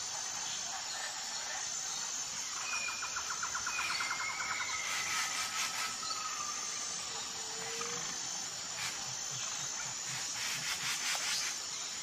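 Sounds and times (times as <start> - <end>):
insects chirring: 0.0 - 12.0.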